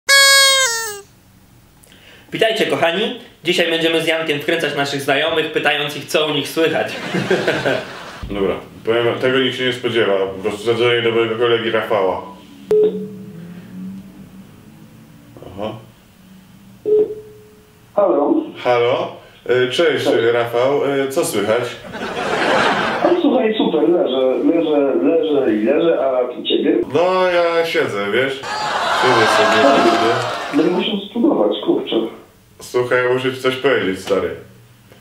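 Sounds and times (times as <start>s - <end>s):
bright tone stepping down: 0.1s - 1.1s.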